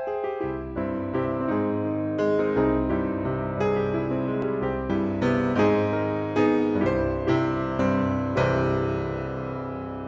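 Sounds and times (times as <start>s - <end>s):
piano chords over bass line: 0.0s - 10.0s.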